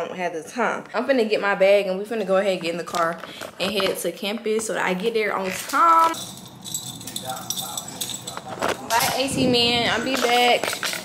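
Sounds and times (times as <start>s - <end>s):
small metal objects jingling: 5.5s - 11.0s.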